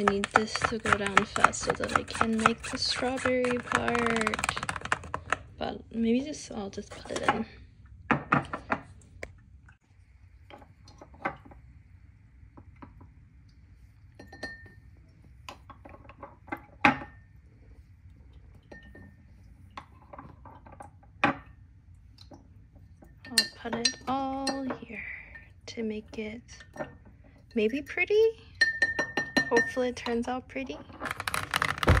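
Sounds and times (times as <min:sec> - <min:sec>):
metal spoon clinking against glass jars: 0:28.6 - 0:30.1.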